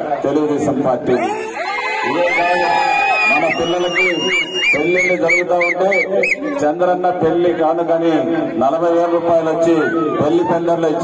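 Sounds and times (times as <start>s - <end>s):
man speaking over loudspeaker: 0.0s - 1.4s, 2.0s - 11.0s.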